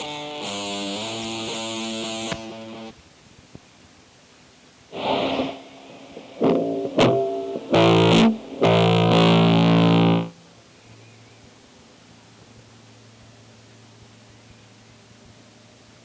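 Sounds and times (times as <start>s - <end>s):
distorted electric guitar chords: 0.0s - 2.9s, 4.9s - 10.4s
faint hiss: 0.0s - 16.0s.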